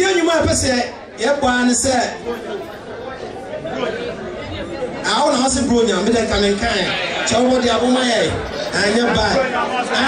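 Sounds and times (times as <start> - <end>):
chatter of people in hall: 0.0 - 10.0
man's voice: 5.0 - 10.0.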